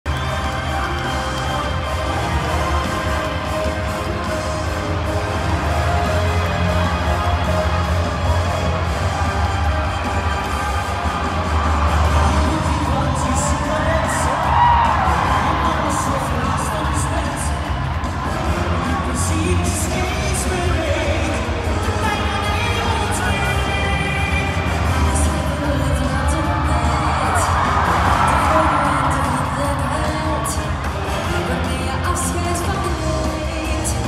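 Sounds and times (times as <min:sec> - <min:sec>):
crowd cheering and shouting: 0:00.0 - 0:34.0
pop music over sound system: 0:00.1 - 0:34.0.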